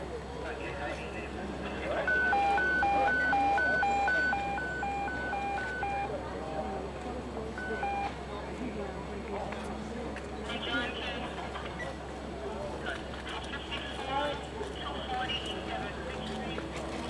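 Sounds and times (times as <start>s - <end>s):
electronic two-tone alarm: 2.0s - 6.1s, 7.6s - 8.1s.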